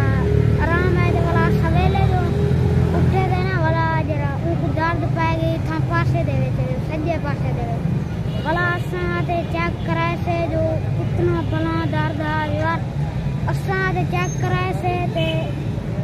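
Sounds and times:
boy talking: 0:00.0 - 0:15.5.

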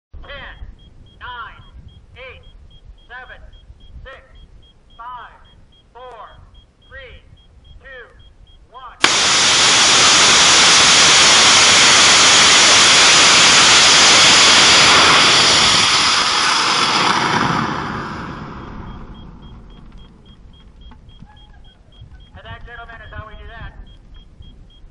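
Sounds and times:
person counting down: 0:00.2 - 0:09.0
rocket motor burning: 0:09.0 - 0:21.2.

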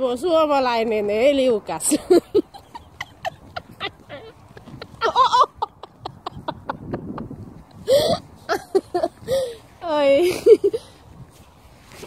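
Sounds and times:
footsteps crunching in snow: 0:10.9 - 0:12.0.

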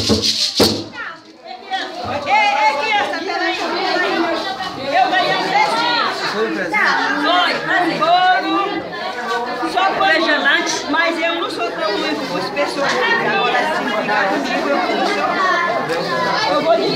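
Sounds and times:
children chattering and calling out: 0:00.0 - 0:16.9.

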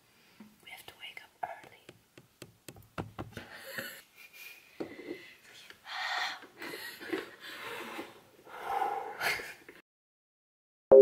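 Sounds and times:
people blowing and gasping: 0:05.9 - 0:09.6.

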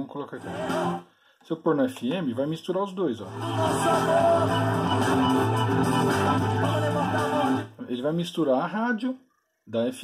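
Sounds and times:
fm radio audio: 0:00.0 - 0:10.0
music from small speakers: 0:00.4 - 0:01.1, 0:03.3 - 0:07.8.

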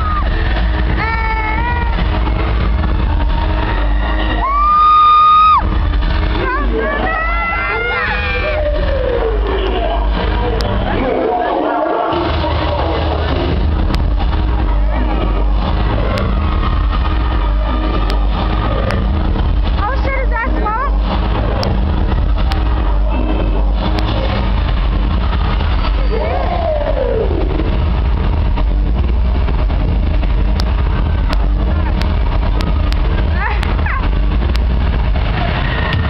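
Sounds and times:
crowd voices and shouting: 0:00.0 - 0:36.0
loud distorted bass-heavy music: 0:00.0 - 0:36.0.

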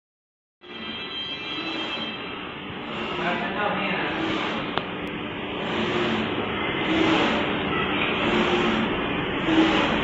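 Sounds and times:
printer mechanical hum: 0:00.6 - 0:10.0.

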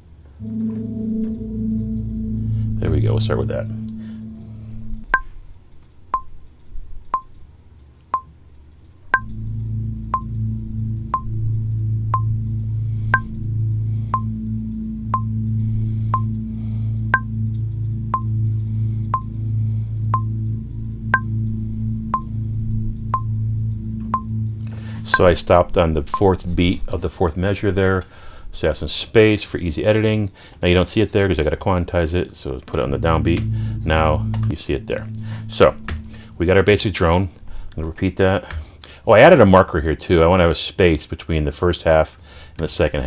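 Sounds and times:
low sustained synth drone: 0:00.4 - 0:06.5, 0:09.0 - 0:27.9, 0:31.2 - 0:38.1
metronome clicking: 0:04.9 - 0:05.3, 0:06.1 - 0:06.3, 0:07.1 - 0:07.3, 0:08.0 - 0:08.3, 0:09.1 - 0:09.4, 0:11.1 - 0:11.3, 0:12.1 - 0:12.3, 0:13.1 - 0:13.4, 0:14.1 - 0:14.3, 0:16.1 - 0:16.4, 0:17.1 - 0:18.3, 0:19.1 - 0:19.3, 0:20.1 - 0:20.3, 0:21.1 - 0:21.3, 0:23.1 - 0:23.3, 0:24.0 - 0:26.4, 0:32.6 - 0:36.4.

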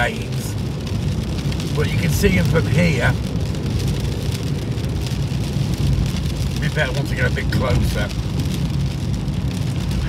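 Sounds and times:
car driving on a wet road: 0:00.0 - 0:10.0
rain on a car roof: 0:00.0 - 0:10.0.

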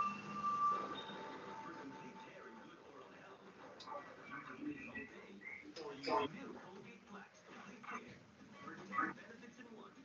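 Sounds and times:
low background talk: 0:00.0 - 0:10.0.

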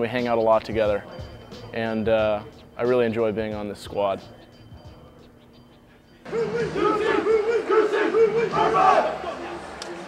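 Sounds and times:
men shouting a chant together: 0:06.3 - 0:09.7.

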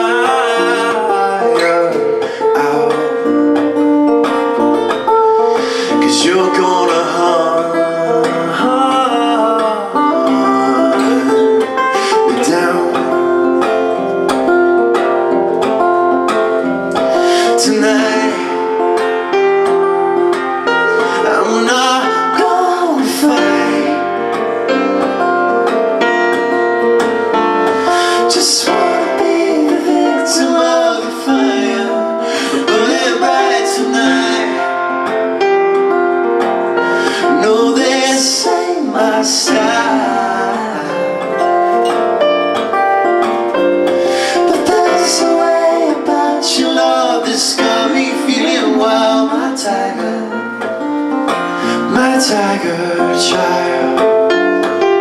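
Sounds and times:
woman singing: 0:00.0 - 0:03.0
man singing: 0:00.0 - 0:03.9, 0:05.3 - 0:14.0, 0:17.0 - 0:25.7, 0:27.7 - 0:35.1, 0:37.0 - 0:41.9, 0:44.0 - 0:50.8, 0:51.5 - 0:54.8
acoustic guitar strumming: 0:00.0 - 0:55.0
keyboard: 0:00.0 - 0:55.0
piano chords: 0:00.0 - 0:55.0.

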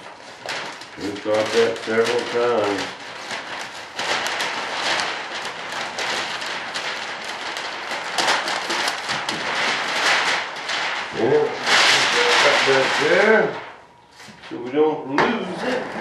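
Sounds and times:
plastic film crinkling: 0:00.0 - 0:16.0.

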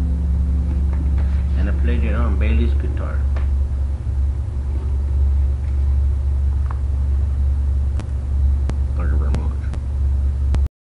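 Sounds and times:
steady low hum: 0:00.0 - 0:10.7.

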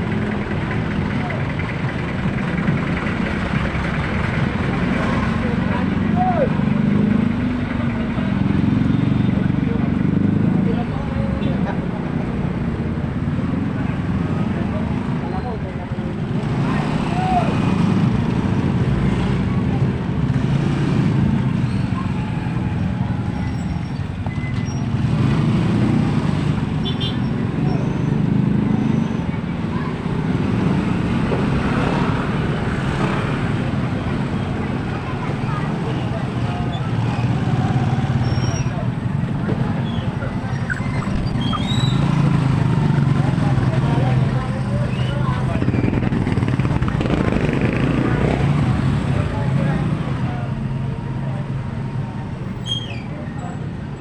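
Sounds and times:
motorcycle engines passing: 0:00.0 - 0:54.0
people talking: 0:00.4 - 0:02.8, 0:04.7 - 0:07.1, 0:13.3 - 0:17.7, 0:28.6 - 0:54.0.

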